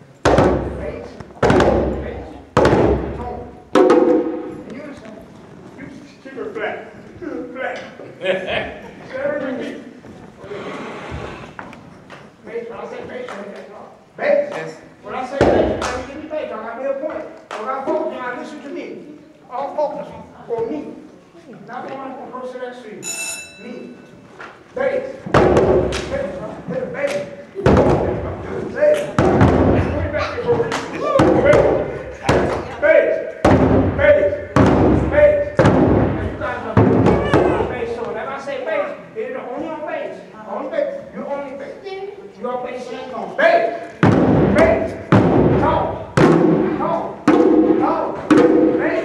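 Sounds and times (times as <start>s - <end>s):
djembe drum strikes: 0.2s - 4.6s, 25.3s - 26.0s, 27.6s - 28.4s, 29.2s - 32.7s, 33.4s - 37.9s, 44.0s - 49.0s
djembe drums struck by hand: 2.6s - 4.5s
person calling: 37.0s - 37.8s.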